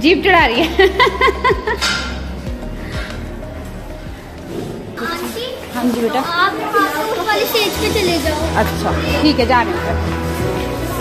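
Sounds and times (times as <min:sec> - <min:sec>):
children talking: 0:04.5 - 0:10.1.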